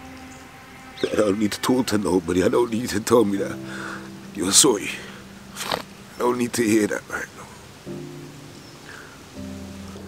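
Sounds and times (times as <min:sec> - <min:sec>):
faint steady hiss: 0:00.0 - 0:10.0
soft music of held chords: 0:00.0 - 0:10.0.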